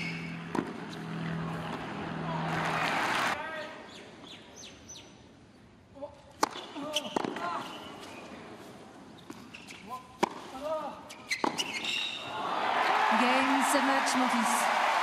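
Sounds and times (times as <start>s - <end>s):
racquet striking tennis ball: 0.0s - 1.0s, 6.4s - 7.5s, 10.2s - 10.7s
tennis ball bouncing on court: 0.4s - 1.1s, 6.4s - 7.5s, 9.3s - 10.7s, 11.3s - 11.9s
crowd cheering: 1.8s - 3.4s, 12.2s - 15.0s.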